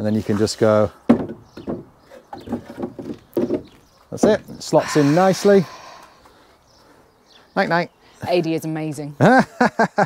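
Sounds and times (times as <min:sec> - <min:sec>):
wood scraping: 0:00.2 - 0:06.5
sharp wooden knock: 0:01.1 - 0:03.7.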